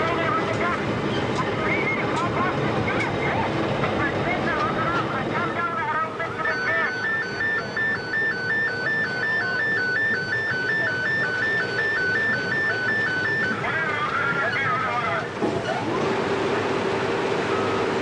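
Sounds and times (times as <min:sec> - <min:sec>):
voices calling: 0:00.0 - 0:15.9
two-tone electronic warning alarm: 0:06.4 - 0:13.7.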